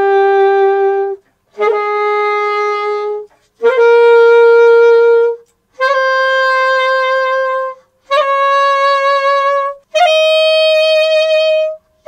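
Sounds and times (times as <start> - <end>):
alto saxophone note with trill: 0.0 - 12.0.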